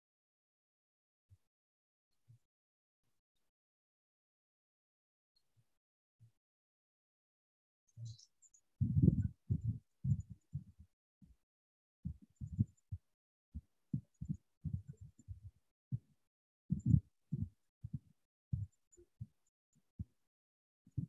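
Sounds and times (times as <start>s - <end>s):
muffled low thumps: 8.8s - 10.6s, 16.7s - 18.7s.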